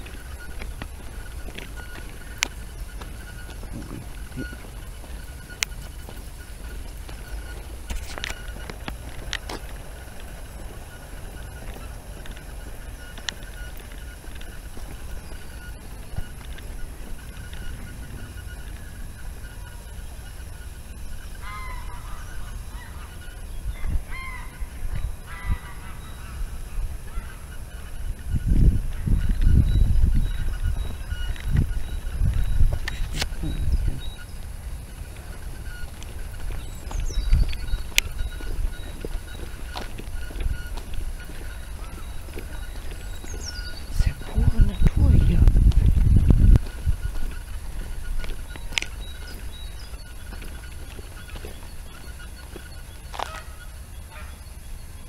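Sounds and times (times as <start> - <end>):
geese honking: 0.0 - 55.0
low rumbling noise: 0.0 - 55.0.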